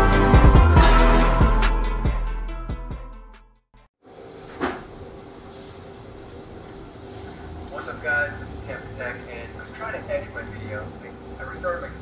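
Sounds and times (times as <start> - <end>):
steady low hum: 4.2 - 12.0.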